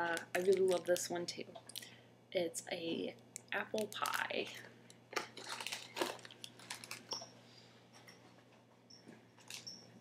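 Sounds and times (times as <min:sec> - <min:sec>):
packaging crinkling and tearing: 0:00.1 - 0:01.1, 0:03.7 - 0:04.6, 0:05.2 - 0:07.2.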